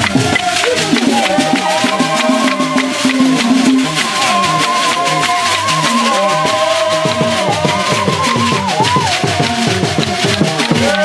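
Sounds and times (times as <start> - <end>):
fast drumming: 0.0 - 11.0
long held high notes: 0.0 - 11.0.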